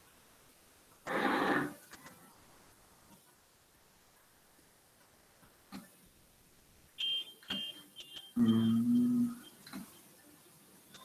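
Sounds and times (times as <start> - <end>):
short high-pitched electronic beeps: 7.0 - 9.6.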